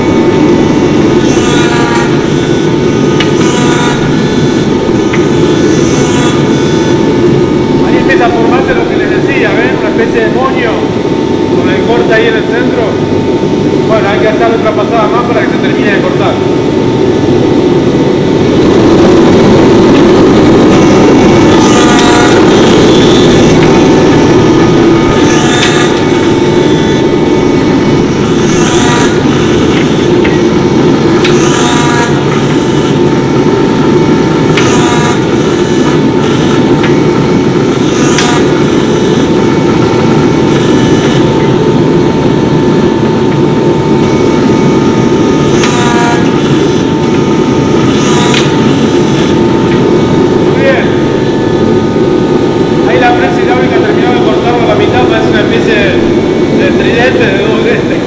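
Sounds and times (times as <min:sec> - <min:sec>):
hydraulic press drone and whine: 0:00.0 - 0:58.0.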